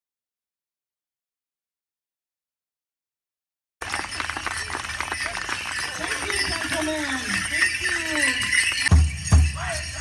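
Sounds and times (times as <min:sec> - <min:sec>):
bells and metal jingles jingling: 0:03.8 - 0:10.0.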